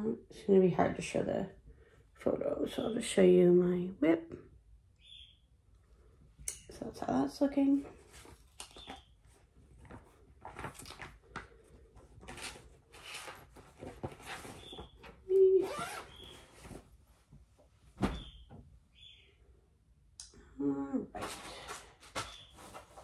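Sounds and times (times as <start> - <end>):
bird chirping and squawking: 5.0 - 5.4, 15.8 - 16.5, 18.1 - 19.4
rustling and handling noises: 6.0 - 18.7, 21.1 - 23.0.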